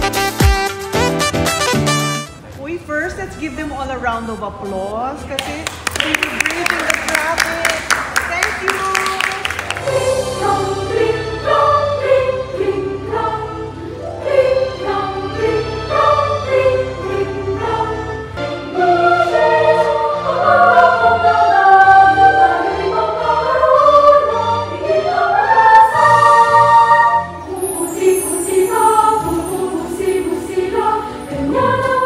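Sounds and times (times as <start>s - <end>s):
children's choir singing: 9.4s - 32.0s.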